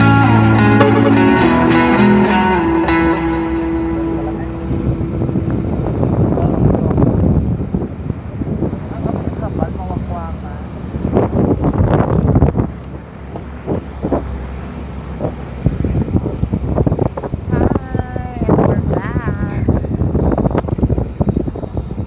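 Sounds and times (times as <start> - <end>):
vehicle engine running: 0.0 - 20.6
wind on microphone: 0.4 - 22.0
passengers' voices: 2.2 - 10.8, 17.5 - 22.0.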